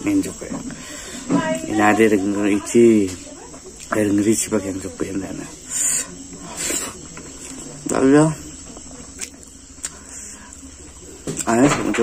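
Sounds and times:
faint high whine: 0:00.0 - 0:12.0
man chewing food: 0:03.6 - 0:04.6, 0:05.2 - 0:11.7
short breathy hiss: 0:05.7 - 0:07.0.

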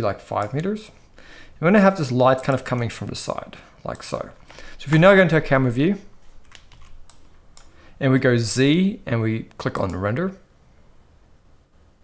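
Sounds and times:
computer keyboard key clicks: 0:06.4 - 0:07.7.

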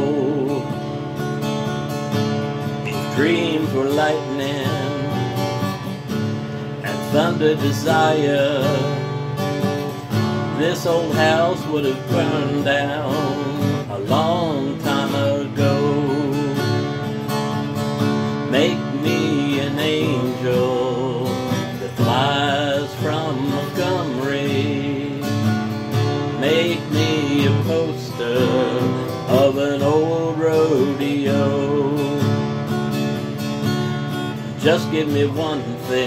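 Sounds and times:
man singing: 0:00.0 - 0:01.0, 0:02.8 - 0:05.9, 0:06.8 - 0:17.3, 0:18.0 - 0:32.5, 0:34.4 - 0:36.0
strummed acoustic guitar: 0:00.0 - 0:36.0.

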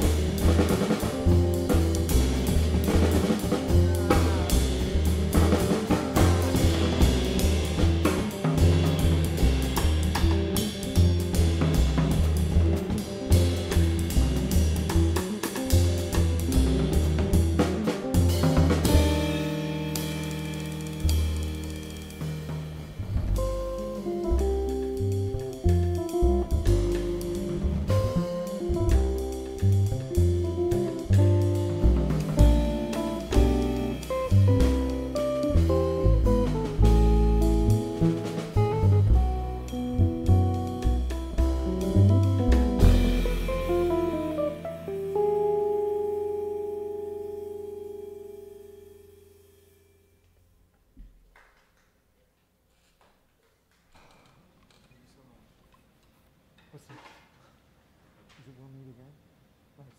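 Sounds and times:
drum kit with cymbals: 0:00.0 - 0:48.9
upright double bass: 0:00.0 - 0:49.8
electric guitar: 0:42.4 - 0:49.4.

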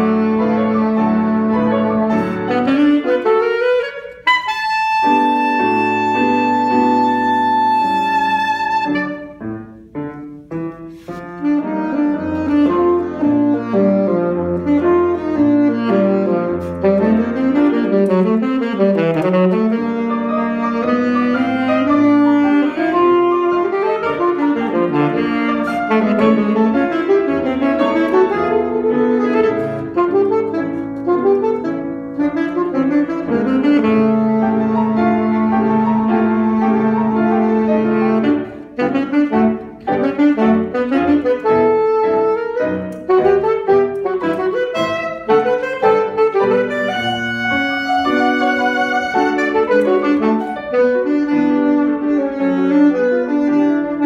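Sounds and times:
alto saxophone melody: 0:00.0 - 0:54.0.

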